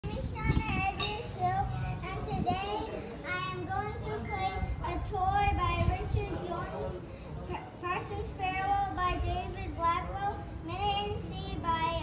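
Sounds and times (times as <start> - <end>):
young children talking: 0.0 - 12.0.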